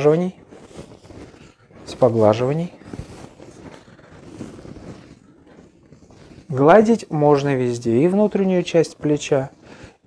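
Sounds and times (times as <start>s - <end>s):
hand rubbing skin: 0.0s - 10.0s.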